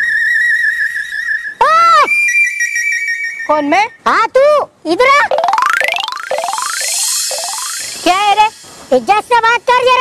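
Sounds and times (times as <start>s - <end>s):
two steady high tones: 5.2s - 8.7s
high electronic whistle tone: 5.3s - 8.2s.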